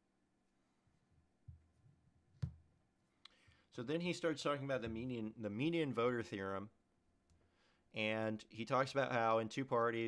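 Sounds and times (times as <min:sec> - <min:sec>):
man speaking: 0:03.8 - 0:06.8, 0:08.0 - 0:10.0.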